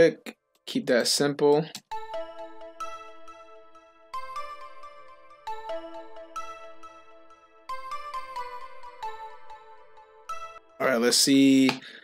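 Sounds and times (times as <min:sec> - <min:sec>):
bell-like synth melody: 0:01.9 - 0:11.0.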